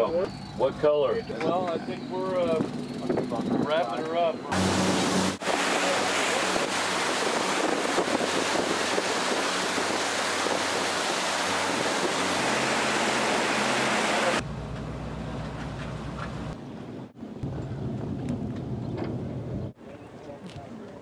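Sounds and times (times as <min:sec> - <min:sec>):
churning water from boat wake: 0:01.5 - 0:14.4
boat engine humming: 0:04.3 - 0:17.1
wind on microphone: 0:04.5 - 0:14.4, 0:17.4 - 0:19.8.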